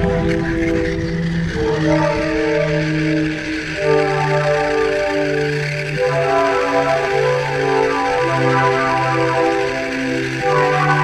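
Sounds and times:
background music melody: 0.0 - 11.0.

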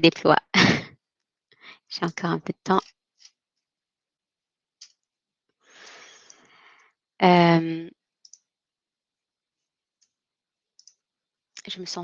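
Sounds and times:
computer mouse clicks: 8.2 - 8.5, 10.8 - 11.0.

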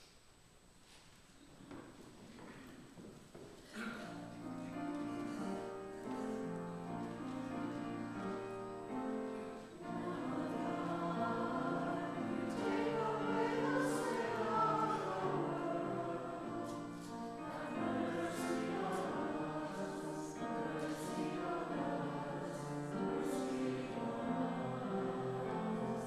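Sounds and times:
church choir singing: 3.8 - 26.0.

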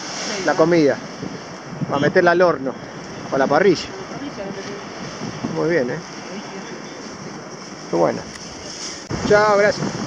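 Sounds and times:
waves breaking on beach: 0.0 - 10.0
wind noise on microphone: 0.0 - 10.0.

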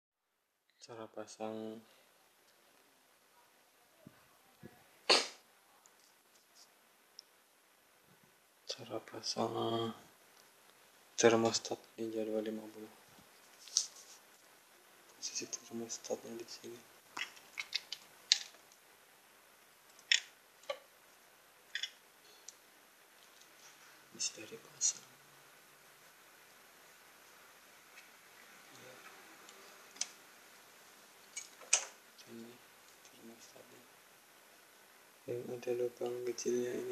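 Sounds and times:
person sneezing: 5.1 - 5.4.

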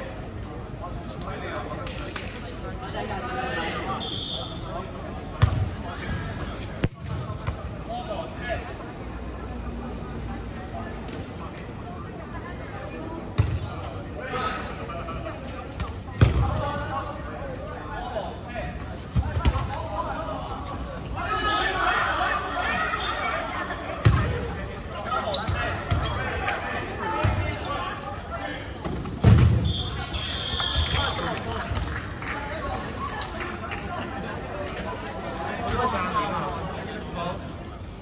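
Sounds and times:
dodgeballs thudding: 15.8 - 16.8, 24.0 - 24.5, 28.8 - 32.0
players shouting: 21.2 - 27.7.

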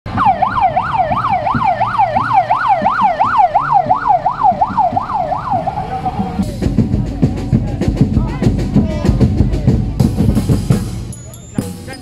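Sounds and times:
electronic siren yelping: 0.1 - 6.4.

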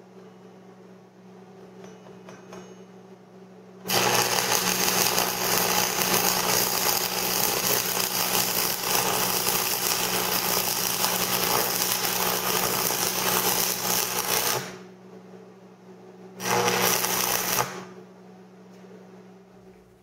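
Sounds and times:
welding arc crackling: 3.9 - 14.8, 16.4 - 17.9
welder low hum: 3.9 - 14.9, 16.3 - 18.1.

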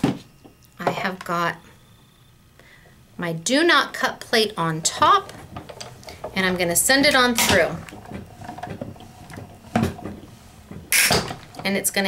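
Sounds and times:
low grinding with creaks: 4.2 - 12.0
die-cutting machine cranking: 5.1 - 11.8.

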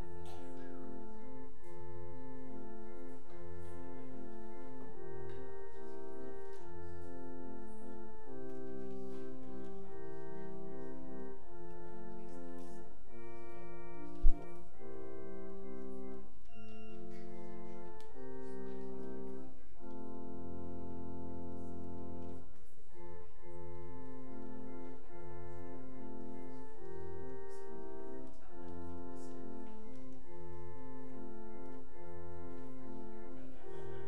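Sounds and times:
deep organ pedal bass notes: 0.0 - 22.2, 22.9 - 34.0
church organ chords: 0.0 - 34.0.

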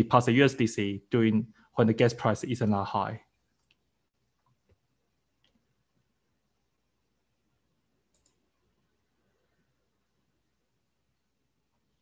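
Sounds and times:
computer mouse clicks: 5.4 - 5.7, 8.0 - 8.6.

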